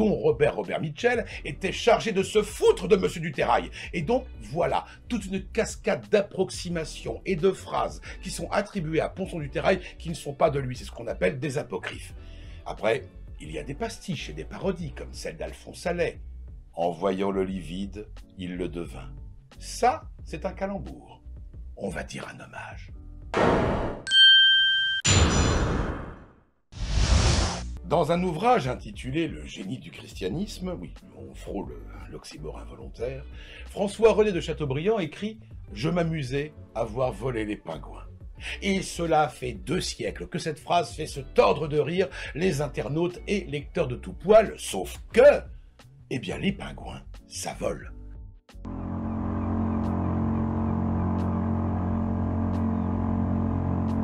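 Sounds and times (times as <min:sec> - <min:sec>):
bell-like ding: 0:24.0 - 0:25.9
noisy swish: 0:26.8 - 0:27.8
motor droning: 0:48.6 - 0:54.0.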